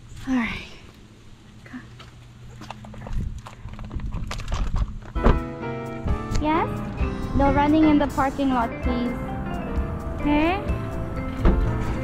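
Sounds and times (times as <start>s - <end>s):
faint steady hum: 0.0s - 5.2s.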